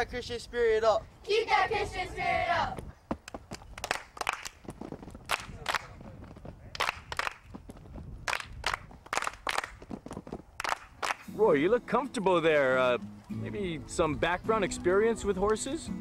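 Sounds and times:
children clapping hands: 3.2s - 4.6s, 5.2s - 5.9s, 6.7s - 7.4s, 8.3s - 9.8s, 10.6s - 11.3s.

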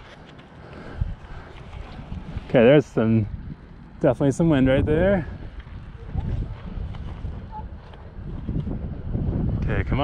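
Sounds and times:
gusty wind on microphone: 0.9s - 10.0s.

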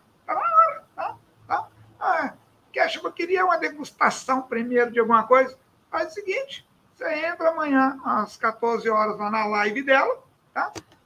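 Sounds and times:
animal high-pitched cry: 0.3s - 2.4s.

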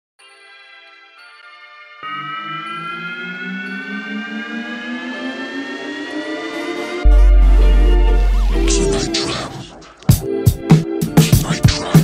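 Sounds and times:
pulsing low synth layer: 2.0s - 10.1s
synthesized riser tone: 2.0s - 10.1s.

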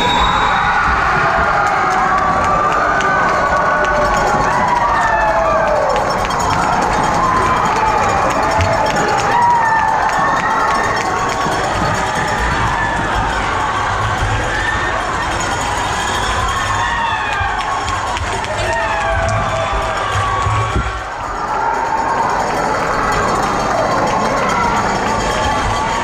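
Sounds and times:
crowd cheering and screaming: 0.0s - 26.0s.

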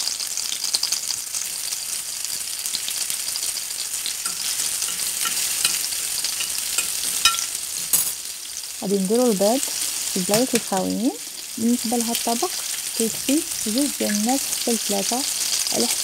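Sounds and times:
oil sizzling and crackling: 0.0s - 16.0s
utensil clicking on dish: 4.2s - 7.5s.

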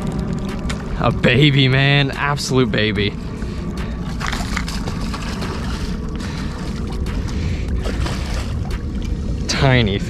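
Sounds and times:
fish splashing and thrashing in water: 0.0s - 9.8s
steady low rumble: 0.0s - 10.0s.

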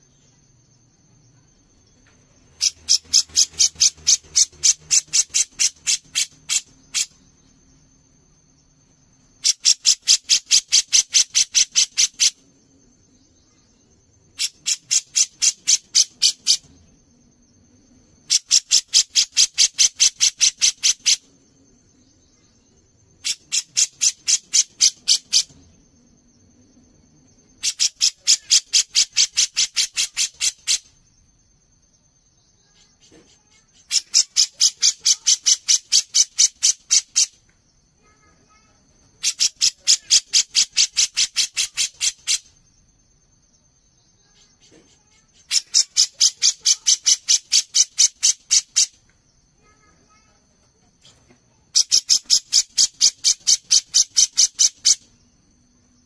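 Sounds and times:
bird calling rapid sharp notes: 2.5s - 7.2s.

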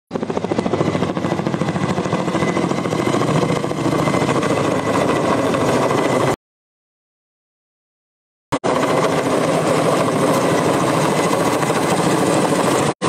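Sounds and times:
helicopter rotor beating: 0.1s - 6.4s, 8.5s - 13.0s.

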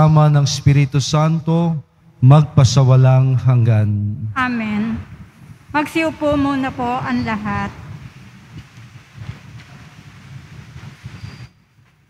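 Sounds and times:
congregation sitting down rumble: 4.7s - 11.3s
shuffling and knocks on pews: 7.8s - 12.0s.

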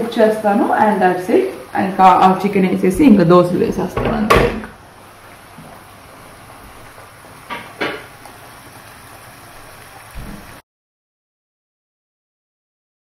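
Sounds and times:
curry sizzling in a pan: 0.0s - 10.6s.

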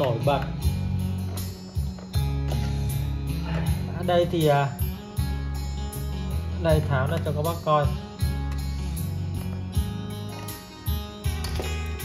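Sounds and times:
background guitar music: 0.0s - 12.0s.

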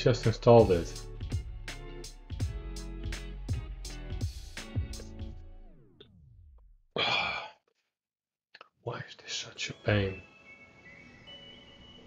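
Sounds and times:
background music gliding down: 0.0s - 6.7s, 9.2s - 12.0s
person sighing: 7.0s - 7.7s.

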